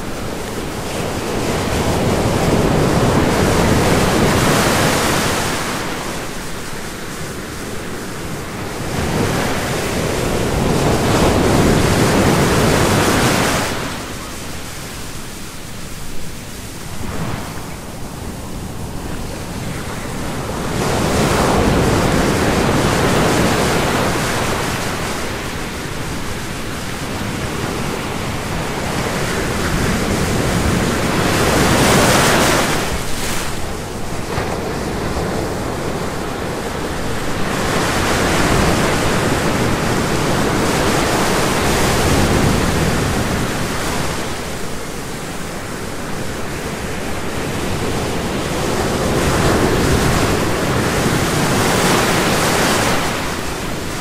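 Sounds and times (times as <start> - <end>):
ocean surf: 0.0 - 54.0.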